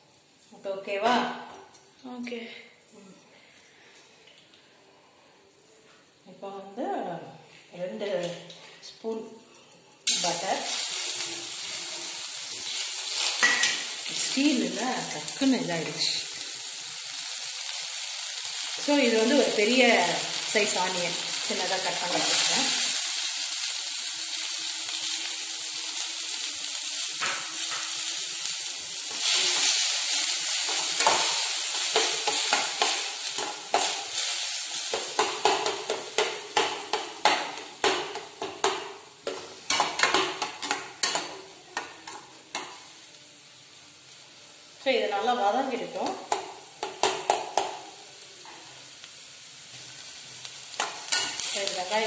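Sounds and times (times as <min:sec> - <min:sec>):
onions sizzling in butter: 0:10.0 - 0:52.0.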